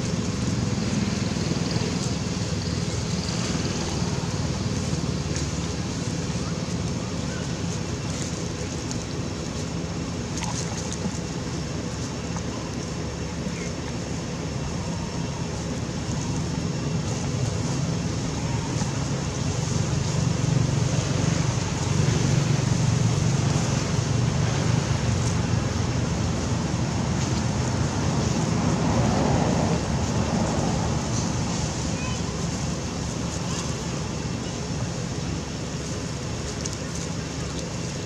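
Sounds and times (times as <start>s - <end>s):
outdoor background rumble: 0.0s - 38.0s.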